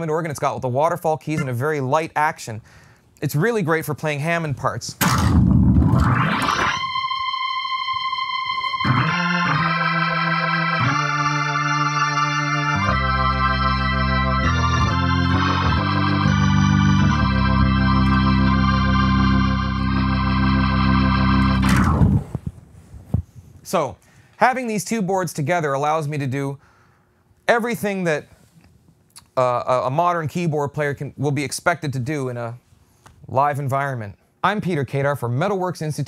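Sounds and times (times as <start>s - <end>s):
organ glissando and chords: 5.0s - 22.4s.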